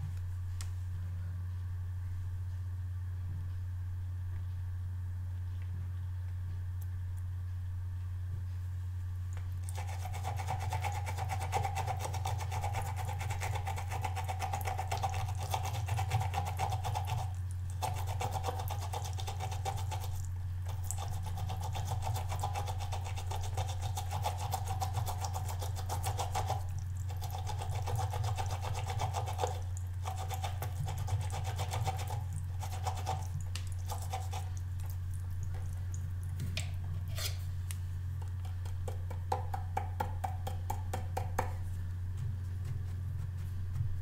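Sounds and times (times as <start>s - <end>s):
paintbrush scrubbing on rubber ridges: 9.7s - 34.9s, 42.1s - 44.0s.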